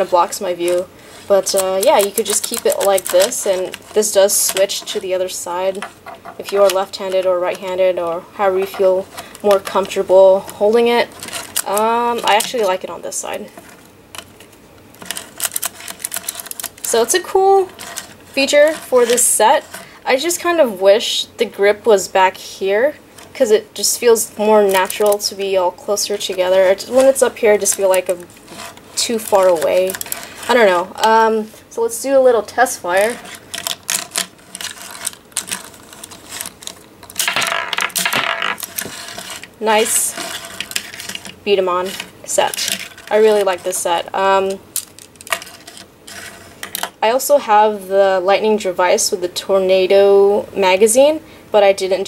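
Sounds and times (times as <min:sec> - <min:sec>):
marble rattling across table: 0:00.0 - 0:14.4, 0:15.0 - 0:19.8, 0:32.8 - 0:47.0
plastic toy parts clicking: 0:01.4 - 0:05.0, 0:15.0 - 0:17.2.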